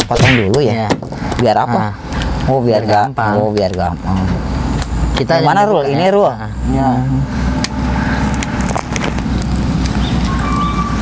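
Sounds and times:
low rumble with crackle: 0:07.5 - 0:11.0.

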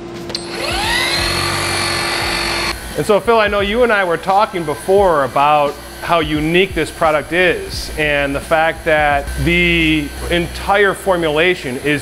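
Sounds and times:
polisher motor whine: 0:00.3 - 0:12.0.

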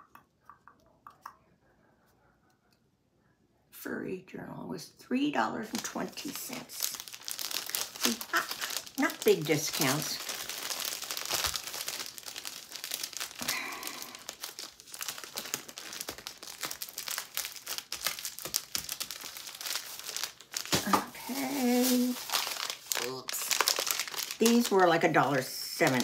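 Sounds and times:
plastic packaging crinkling: 0:05.7 - 0:26.0.

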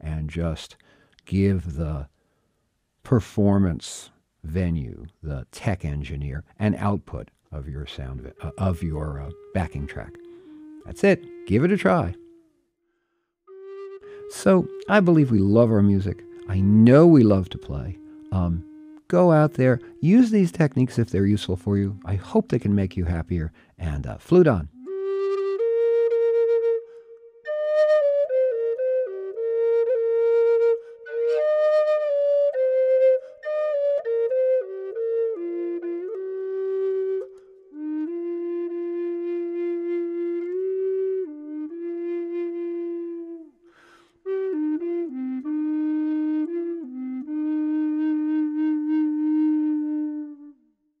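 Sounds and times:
low flute melody: 0:06.2 - 0:51.0.

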